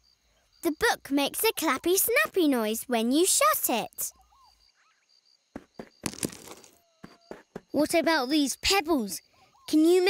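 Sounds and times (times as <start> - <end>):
rustling clatter of small knocks: 5.6 - 7.7.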